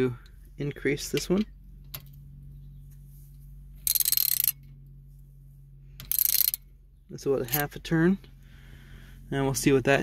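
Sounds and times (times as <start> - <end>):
steady low hum: 0.0 - 10.0
ratchet clicking: 3.8 - 4.7, 6.0 - 6.7.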